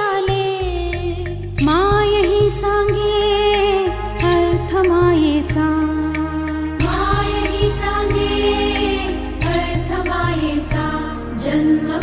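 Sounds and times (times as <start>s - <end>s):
song over steady low beat: 1.7s - 12.0s.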